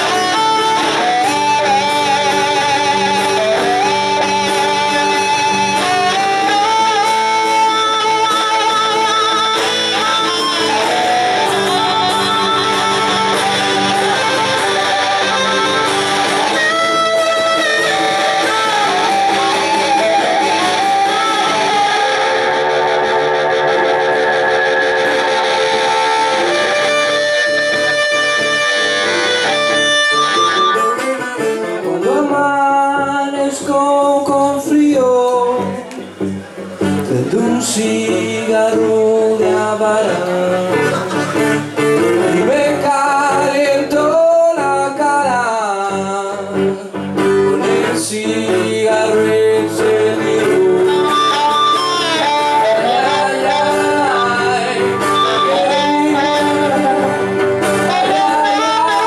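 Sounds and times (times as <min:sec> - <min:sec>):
amplified blues harmonica: 0:00.0 - 0:33.1, 0:35.5 - 0:59.0
strummed acoustic guitar: 0:00.0 - 0:59.0.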